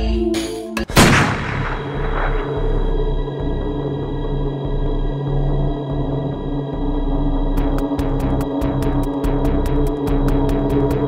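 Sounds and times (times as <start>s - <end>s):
low music drone: 0.0s - 11.0s
loud booming impact: 0.9s - 2.8s.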